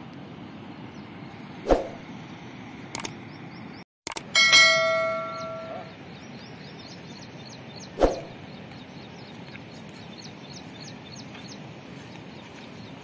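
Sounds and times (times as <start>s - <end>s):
metal object ringing: 4.3s - 5.9s.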